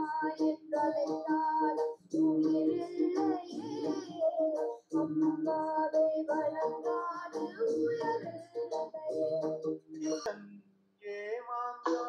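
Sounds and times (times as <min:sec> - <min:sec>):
child singing film song: 0:00.0 - 0:10.4, 0:11.7 - 0:12.0.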